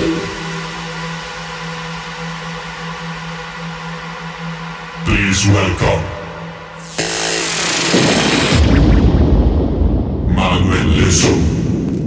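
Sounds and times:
hissing noise burst with falling whine: 6.7s - 9.9s
deep bass rumble: 7.9s - 12.0s.

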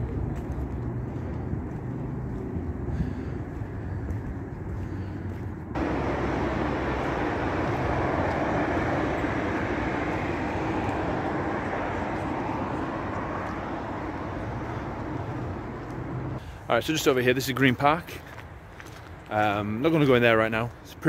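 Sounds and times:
traffic rumble: 0.0s - 21.0s
car driving past: 5.7s - 16.4s.

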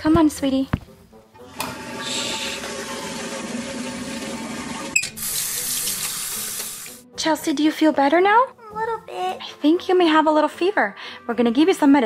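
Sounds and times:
water running from tap: 1.6s - 7.0s.

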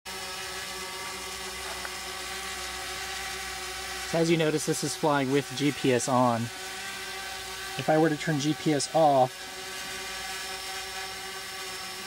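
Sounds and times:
drone propellers humming: 0.1s - 12.0s.

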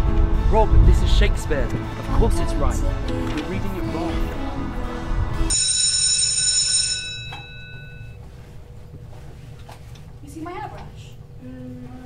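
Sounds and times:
electric school bell ringing: 5.5s - 8.2s.

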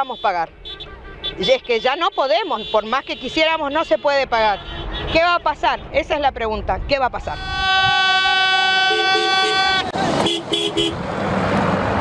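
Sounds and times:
long steady vehicle horn: 0.0s - 5.2s, 7.4s - 11.0s
two-note car horn toots: 7.4s - 11.0s.

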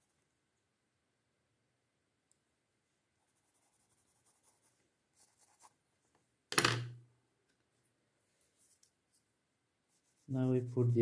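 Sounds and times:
pencil scratching on paper: 3.3s - 5.8s, 9.9s - 11.0s.

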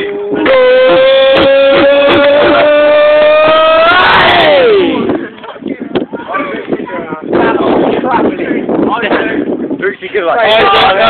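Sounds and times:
young man's long high ooh: 0.4s - 5.0s.

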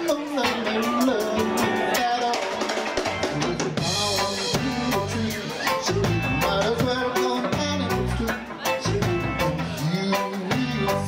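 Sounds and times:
bass guitar: 0.0s - 11.0s
man singing lead vocal: 0.0s - 11.0s
reggae band playing: 0.0s - 11.0s.

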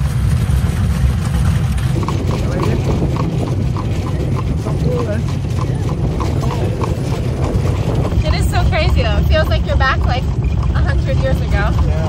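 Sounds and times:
carriage wheels rumbling: 0.0s - 12.0s
hooves clip-clopping: 0.0s - 12.0s.

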